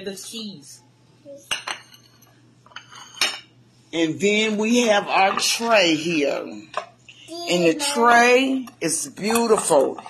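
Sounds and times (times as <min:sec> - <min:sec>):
plates clinking on countertop: 0:01.4 - 0:03.6, 0:08.6 - 0:10.0.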